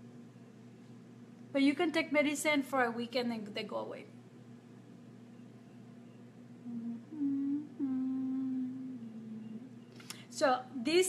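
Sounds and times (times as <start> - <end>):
woman humming: 6.6 - 9.8.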